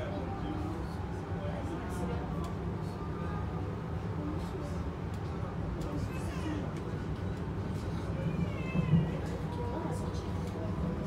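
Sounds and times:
train rumbling: 5.0 - 11.0.

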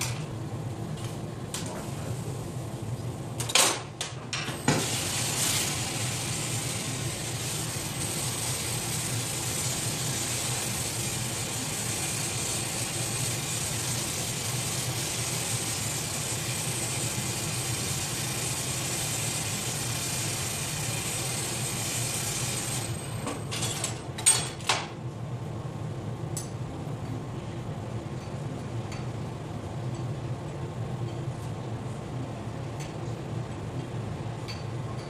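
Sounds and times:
gas torch flame hissing: 4.5 - 23.5.

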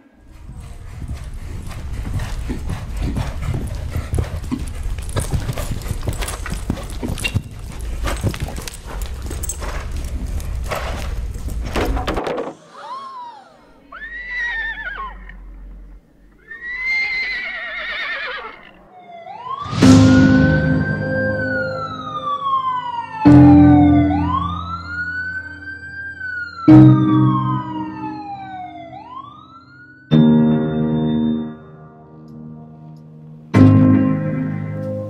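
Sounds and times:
horse whinnying: 12.7 - 15.6, 16.4 - 18.9
siren wailing: 18.8 - 30.3
deep music hits: 19.6 - 25.9.

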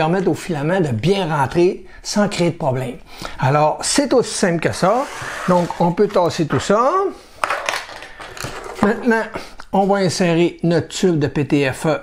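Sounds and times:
metal tools clattering on wood: 7.4 - 9.2.

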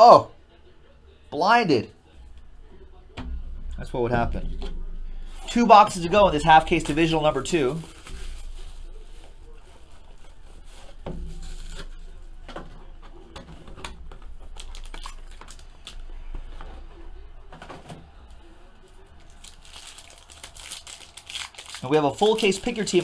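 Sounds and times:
packaging rustling and crinkling: 6.1 - 12.7, 13.6 - 16.7, 18.8 - 23.0.

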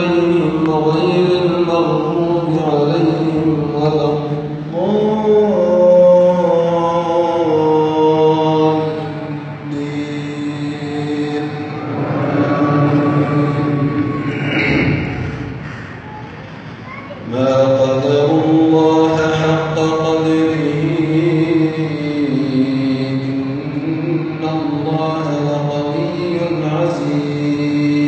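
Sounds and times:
man chanting melodic recitation: 0.0 - 15.6, 17.2 - 28.0.

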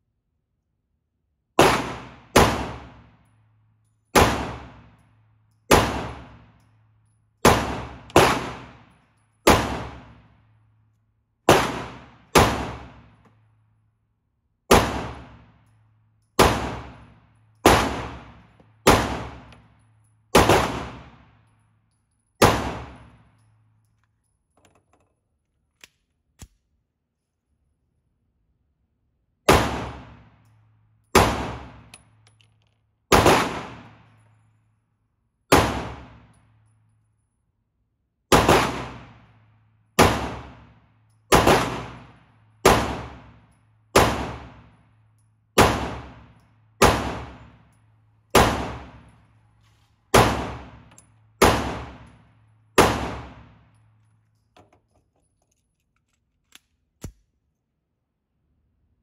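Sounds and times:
pistol shots echoing indoors: 1.4 - 24.0, 29.2 - 37.2, 38.2 - 54.5.

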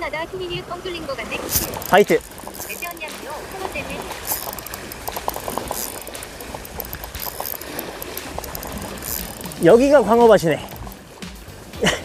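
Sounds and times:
waves washing over rocks: 0.0 - 12.0
fishing reel clicking: 1.4 - 11.5.

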